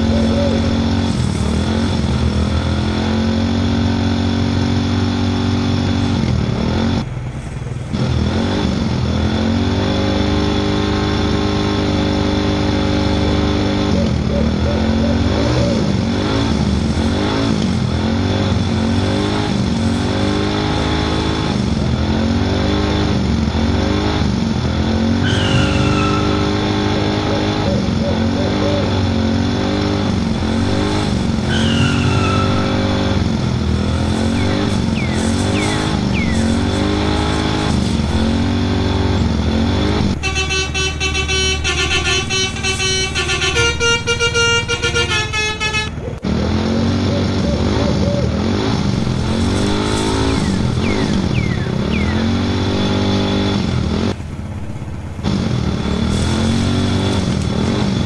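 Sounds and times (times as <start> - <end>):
engine revving: 0.0 - 58.0
multi-tone horn melody: 40.0 - 46.0.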